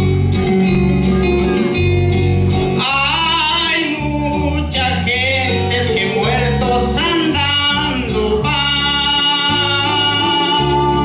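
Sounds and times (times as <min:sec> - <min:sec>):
band with guitar and bass: 0:00.0 - 0:11.0
man singing gospel: 0:02.8 - 0:11.0.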